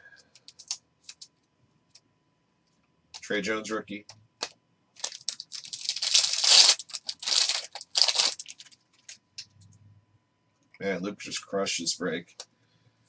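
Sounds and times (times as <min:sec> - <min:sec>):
crinkling card packaging: 0:00.3 - 0:01.3, 0:05.0 - 0:09.5.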